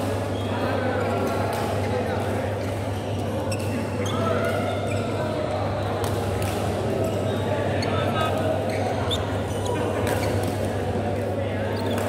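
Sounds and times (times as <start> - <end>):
background chatter: 0.0 - 12.0
shoes squeaking on court: 2.6 - 5.8, 7.0 - 10.7, 11.6 - 12.0
racket hitting shuttlecock: 6.0 - 6.9, 10.0 - 10.7.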